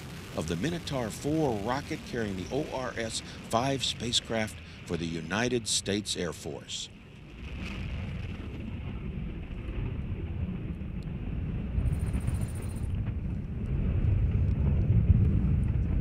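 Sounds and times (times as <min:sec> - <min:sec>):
rocket motor rumble: 0:00.0 - 0:05.7, 0:07.1 - 0:16.0.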